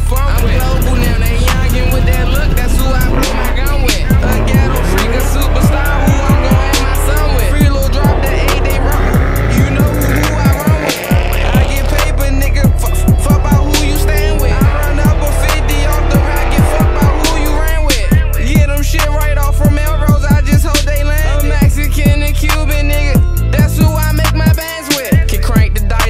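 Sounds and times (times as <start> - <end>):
tyres squealing: 0.0 - 25.2
car engine revving: 0.0 - 26.0
hip-hop beat with heavy bass: 0.0 - 26.0.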